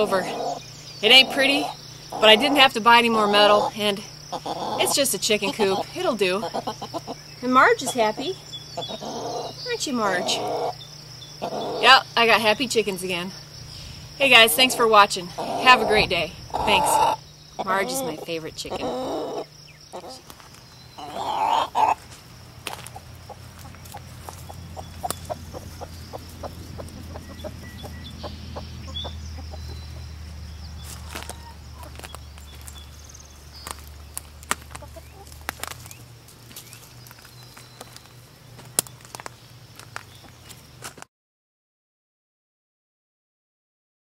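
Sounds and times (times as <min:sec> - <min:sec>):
hens clucking: 0:00.0 - 0:10.8, 0:11.4 - 0:39.3.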